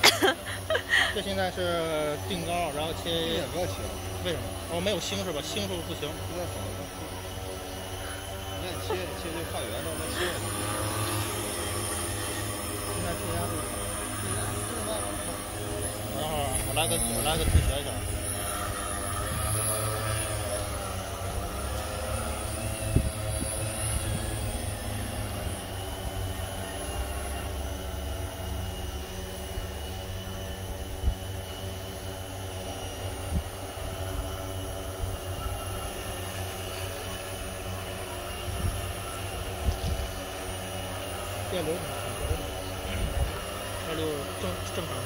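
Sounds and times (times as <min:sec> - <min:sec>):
drone propellers humming: 0:00.0 - 0:45.0.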